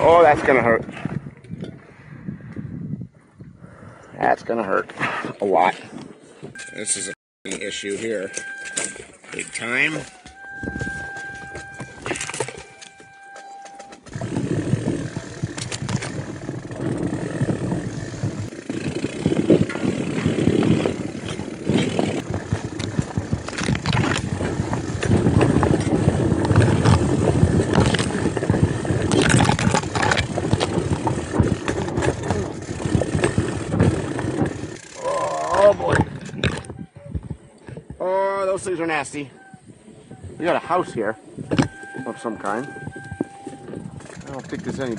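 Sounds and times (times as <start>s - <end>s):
bicycle rattling over rocks: 7.5s - 39.1s, 40.4s - 44.9s
branches scraping bike: 7.5s - 44.9s.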